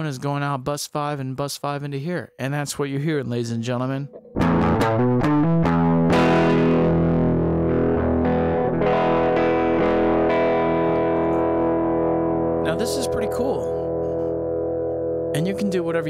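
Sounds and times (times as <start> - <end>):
distorted electric guitar: 4.1 - 16.0.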